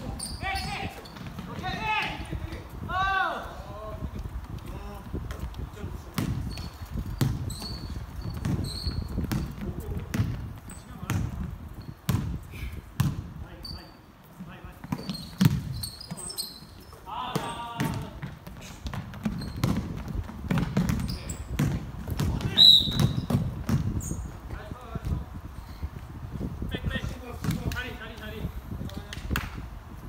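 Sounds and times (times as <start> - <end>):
shoes squeaking on court: 0.0 - 2.8, 4.4 - 26.1
basketball bouncing on wooden floor: 6.1 - 11.5, 12.1 - 12.4, 13.0 - 13.2, 14.8 - 24.0.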